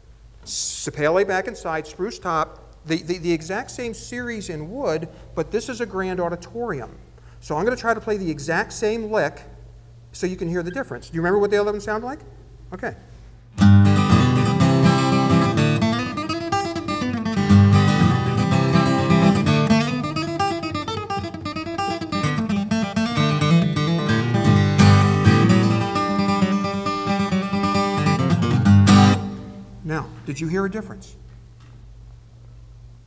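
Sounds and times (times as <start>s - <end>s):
acoustic guitar bluegrass lick: 13.6s - 30.2s.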